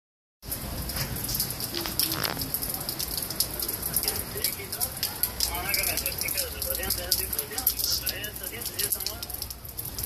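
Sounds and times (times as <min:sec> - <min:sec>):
rain falling on a wet street: 0:00.4 - 0:10.0
raindrops hitting close by: 0:00.4 - 0:10.0.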